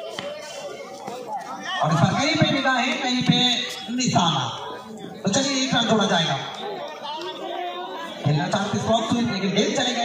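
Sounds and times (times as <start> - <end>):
crowd chatter: 0.0 - 10.0
man talking loudly: 1.6 - 6.6, 7.5 - 10.0.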